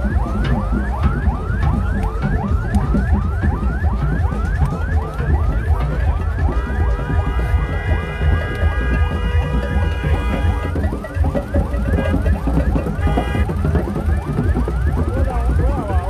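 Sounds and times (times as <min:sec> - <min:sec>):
crowd rumble: 0:00.0 - 0:16.0
electronic yelp siren: 0:00.0 - 0:16.0
engines rumbling: 0:00.0 - 0:16.0
steady multi-pitch tone: 0:00.0 - 0:16.0.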